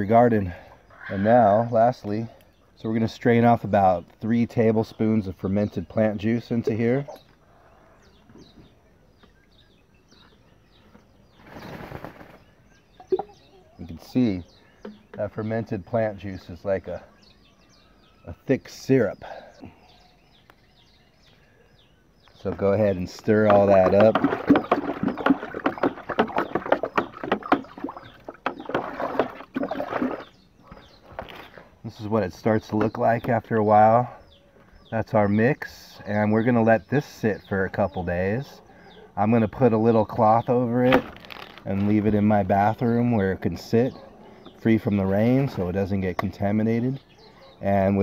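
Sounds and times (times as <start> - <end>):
small birds chirping: 0.0 - 48.0
water sloshing in plastic bucket: 23.3 - 30.4.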